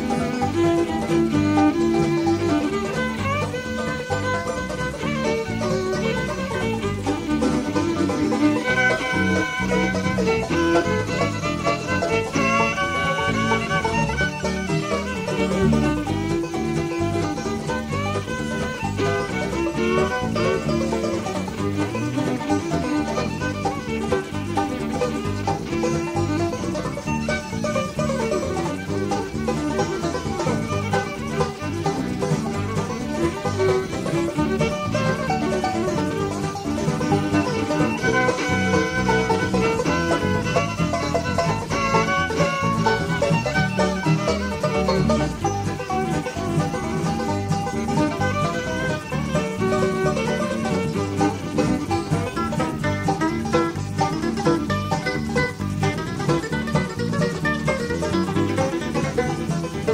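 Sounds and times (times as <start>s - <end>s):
banjo: 0.0s - 59.9s
electric bass: 0.0s - 59.9s
fiddle: 0.0s - 59.9s
guitar: 0.0s - 59.9s
mandolin: 0.0s - 59.9s.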